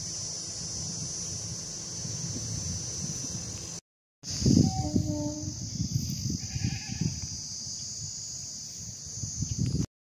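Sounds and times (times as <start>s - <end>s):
wind buffeting the microphone: 1.9s - 3.7s, 4.3s - 9.9s
high-pitched drone: 4.4s - 5.8s
faint livestock call: 6.4s - 7.2s.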